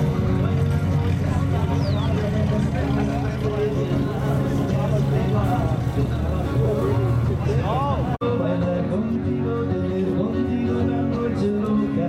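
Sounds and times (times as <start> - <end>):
car engine idling: 0.0 - 8.2
people talking: 0.0 - 8.2.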